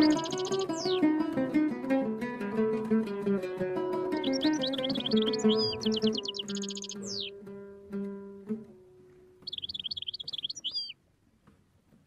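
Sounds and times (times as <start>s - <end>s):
songbird twittering: 0.0s - 1.1s, 4.1s - 7.4s, 9.4s - 11.0s
plucked oud notes: 0.0s - 10.9s.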